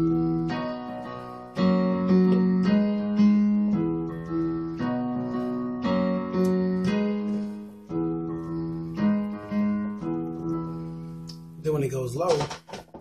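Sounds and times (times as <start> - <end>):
digital piano playing chords: 0.0 - 13.0.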